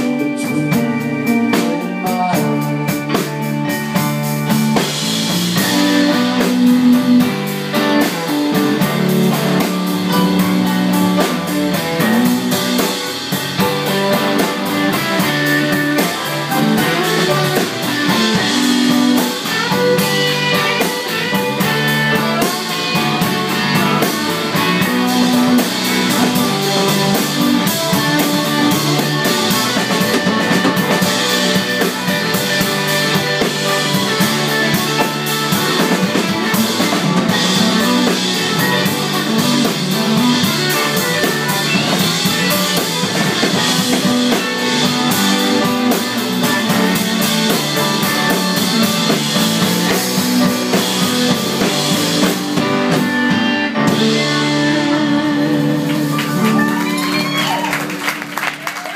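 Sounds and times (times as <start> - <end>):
bass line: 0.0 - 58.9
guitar: 0.0 - 58.9
drum beat: 1.7 - 53.4.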